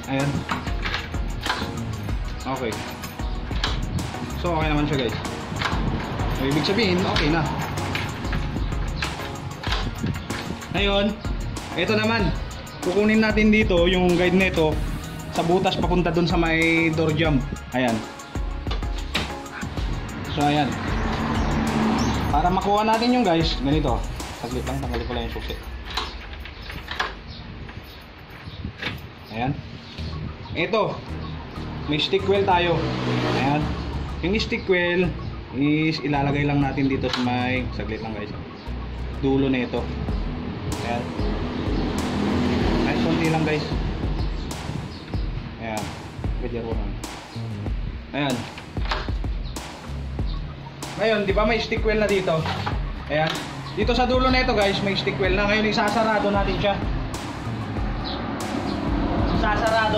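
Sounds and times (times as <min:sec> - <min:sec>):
background music: 0:00.0 - 0:27.9, 0:29.2 - 0:59.9
sharp metallic lock clicks: 0:00.4 - 0:01.8, 0:07.1 - 0:10.6, 0:25.7 - 0:27.2.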